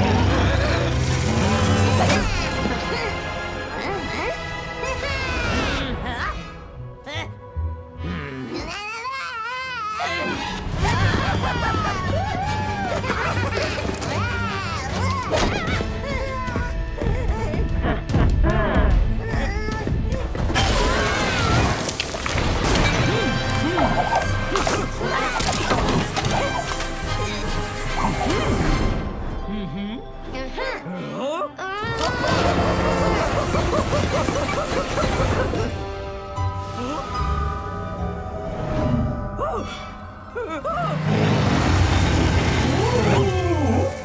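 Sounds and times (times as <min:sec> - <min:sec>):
background music: 0:00.0 - 0:44.0
cartoon crashing and clattering: 0:00.8 - 0:02.6.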